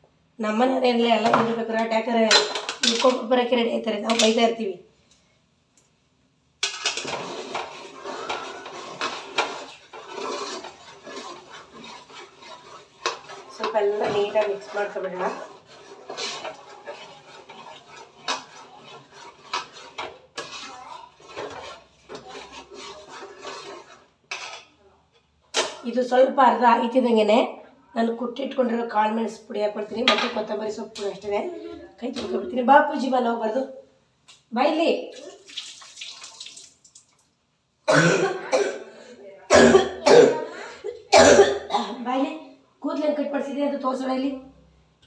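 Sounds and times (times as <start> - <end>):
spoon scraping metal pot: 6.6 - 24.7.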